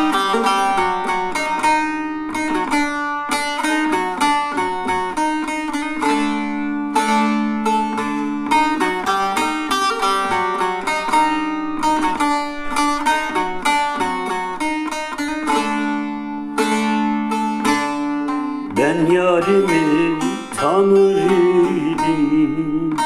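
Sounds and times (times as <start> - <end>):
long-necked lute plucked: 0.0 - 23.0
person singing: 18.7 - 23.0.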